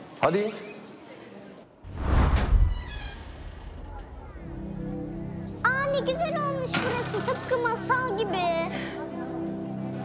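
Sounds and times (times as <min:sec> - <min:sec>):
heavy metal door opening: 0:02.2 - 0:04.4.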